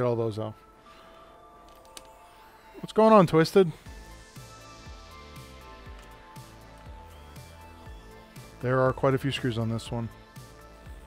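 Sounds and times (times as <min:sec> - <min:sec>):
faint background music: 0:00.0 - 0:11.0
man speaking: 0:02.8 - 0:03.8, 0:08.6 - 0:10.1.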